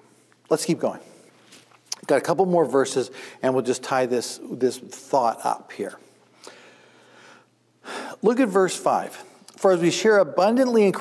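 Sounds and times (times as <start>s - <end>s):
man speaking: 0.5s - 1.2s, 1.9s - 6.1s, 8.1s - 11.0s.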